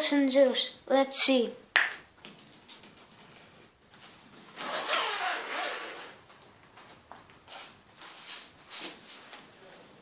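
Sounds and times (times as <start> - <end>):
zipper pulled open: 4.5 - 6.2.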